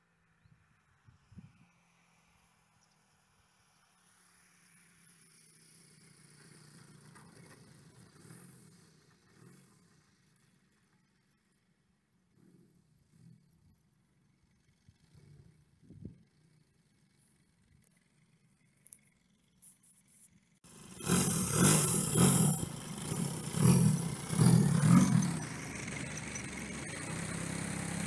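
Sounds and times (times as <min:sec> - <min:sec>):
distant model plane engine: 0:00.0 - 0:28.0.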